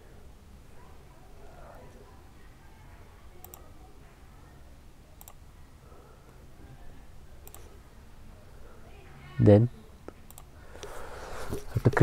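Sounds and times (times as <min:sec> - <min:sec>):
computer mouse clicks: 0:03.4 - 0:03.7, 0:05.2 - 0:05.4, 0:07.4 - 0:07.7, 0:10.1 - 0:10.9.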